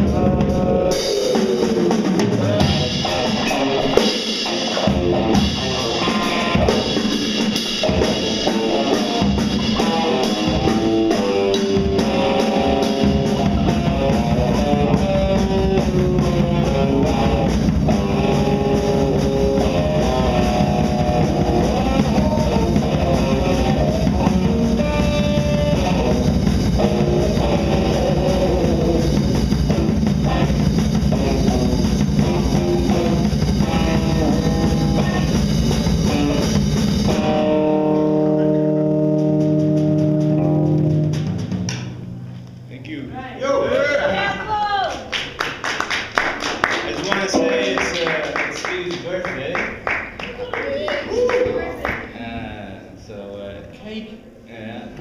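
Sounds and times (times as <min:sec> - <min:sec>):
drum kit playing: 0:00.0 - 0:42.7, 0:44.1 - 0:52.5
electric guitar: 0:00.0 - 0:42.7.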